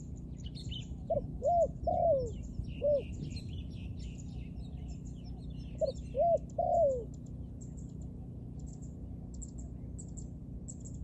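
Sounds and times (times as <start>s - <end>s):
small birds chirping: 0.0s - 11.0s
dove cooing: 0.9s - 3.4s, 4.8s - 7.1s.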